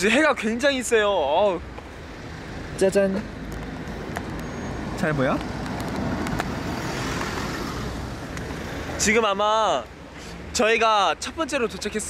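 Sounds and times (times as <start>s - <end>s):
car passing slowly: 1.2s - 10.5s.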